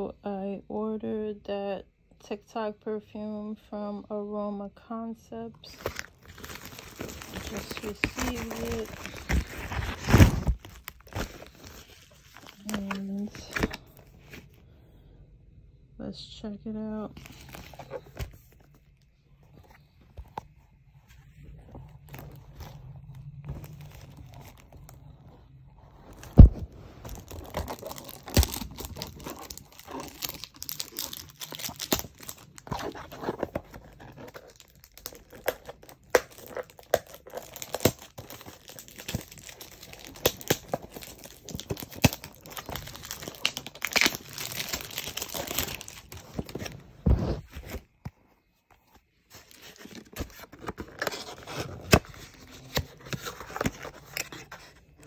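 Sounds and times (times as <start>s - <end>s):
plastic wrapping tearing and crinkling: 5.7s - 14.0s, 21.9s - 25.0s, 26.1s - 46.8s.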